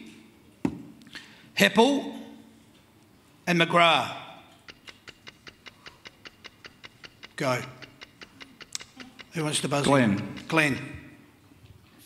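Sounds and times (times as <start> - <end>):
countdown clock ticking: 4.6 - 11.0.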